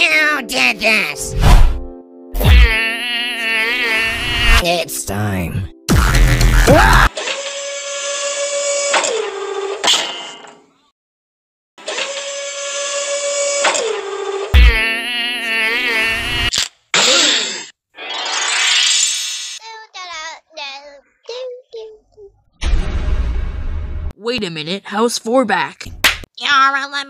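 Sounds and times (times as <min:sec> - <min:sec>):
squeaky vocal sounds: 0:02.4 - 0:04.6, 0:05.9 - 0:09.3, 0:14.6 - 0:20.0.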